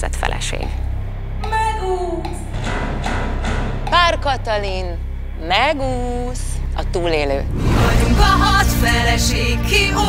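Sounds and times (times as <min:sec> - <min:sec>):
pop backing music: 0:07.5 - 0:10.0.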